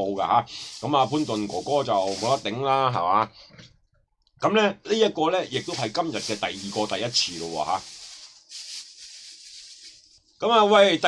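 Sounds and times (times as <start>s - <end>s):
man speaking: 0.0s - 3.3s, 4.4s - 7.9s, 10.4s - 11.0s
hiss: 0.5s - 2.5s.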